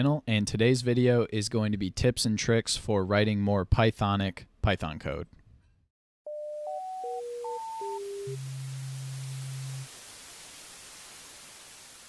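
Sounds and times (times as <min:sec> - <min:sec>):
static hiss: 0:07.4 - 0:12.0
low buzzing tone: 0:07.7 - 0:09.9.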